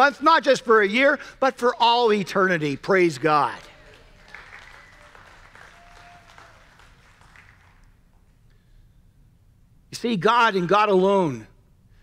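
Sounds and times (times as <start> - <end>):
scattered clapping: 3.2 - 8.0.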